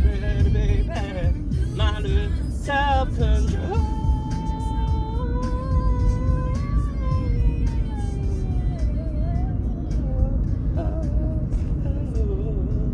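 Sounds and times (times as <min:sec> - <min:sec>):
backing music with low rumble: 0:00.0 - 0:12.9.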